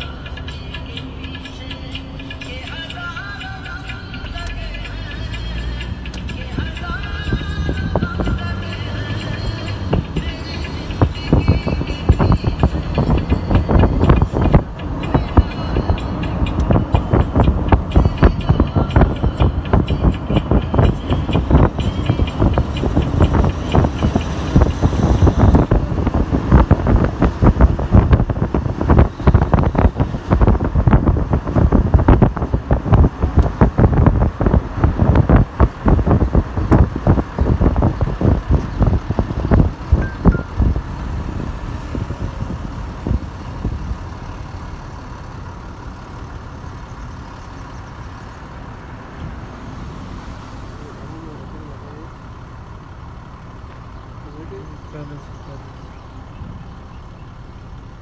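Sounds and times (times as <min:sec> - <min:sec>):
car road noise: 0:00.0 - 0:58.0
wind buffeting on microphone: 0:16.6 - 0:44.1.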